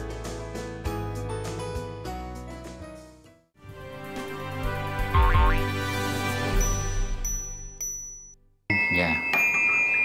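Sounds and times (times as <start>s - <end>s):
rising boing effect: 5.1s - 5.7s
bright jingle: 6.4s - 10.0s
high dings: 6.6s - 10.0s
small brass bell ringing: 6.6s - 10.0s.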